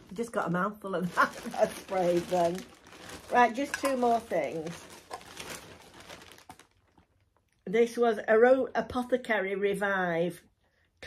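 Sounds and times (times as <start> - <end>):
packaging rustling: 0.0 - 7.3.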